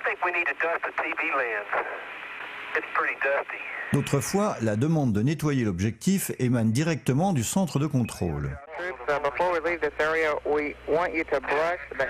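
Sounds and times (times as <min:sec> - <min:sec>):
radio hiss: 0:00.0 - 0:04.7, 0:07.7 - 0:12.0
narrow-band radio speech: 0:07.8 - 0:12.0.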